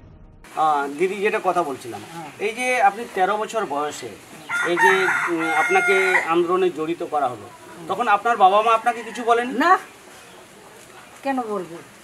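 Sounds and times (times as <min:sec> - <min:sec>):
rooster crowing: 0:04.4 - 0:06.6, 0:08.6 - 0:09.6.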